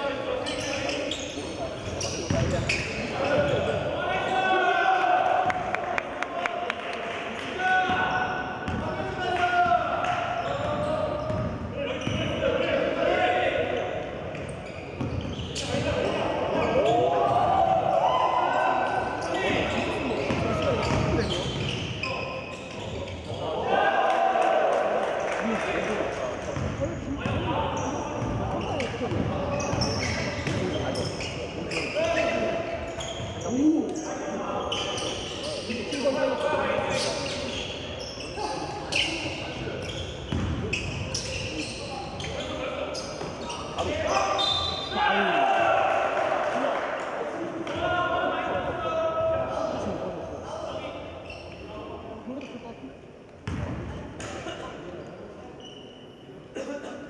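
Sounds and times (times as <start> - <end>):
shoes squeaking on gym floor: 0.4 - 3.7, 14.3 - 17.1, 19.2 - 23.4, 27.8 - 44.9, 51.2 - 51.7, 54.9 - 56.4.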